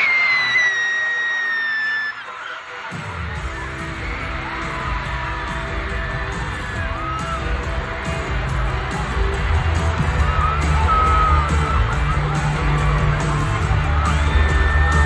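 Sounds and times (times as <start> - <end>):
long high-pitched scream: 0.0 - 2.6
crowd screaming: 0.0 - 15.0
live band with heavy bass: 3.0 - 15.0.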